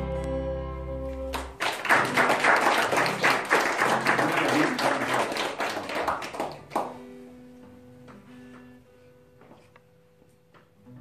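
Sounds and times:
audience applauding: 0:01.3 - 0:07.1.

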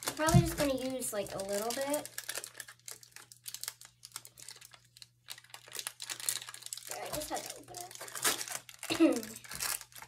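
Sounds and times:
foil pouch crinkling: 0:00.0 - 0:10.0.

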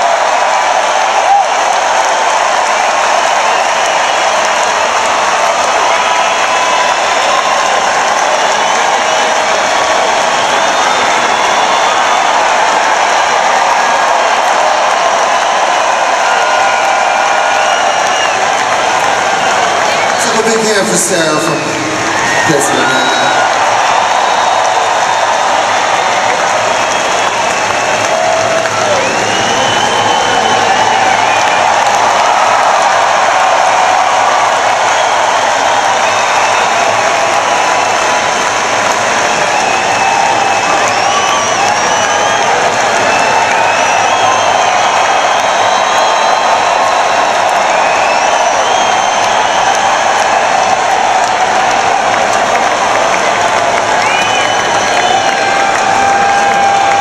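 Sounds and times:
crowd applauding and cheering: 0:00.0 - 0:57.0.

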